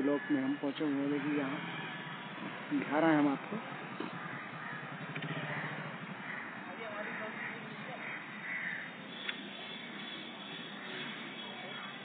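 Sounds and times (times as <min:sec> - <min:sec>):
crows cawing: 0:00.0 - 0:02.2, 0:04.0 - 0:09.0.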